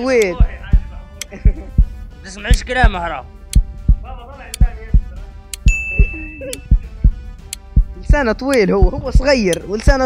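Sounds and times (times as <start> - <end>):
heartbeat-like double thump: 0.4 - 2.0, 3.6 - 4.1, 4.7 - 8.0
bright ding: 5.7 - 6.5.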